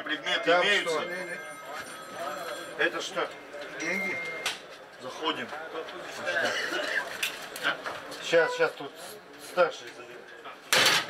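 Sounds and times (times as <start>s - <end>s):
men talking indistinctly: 0.0s - 10.6s.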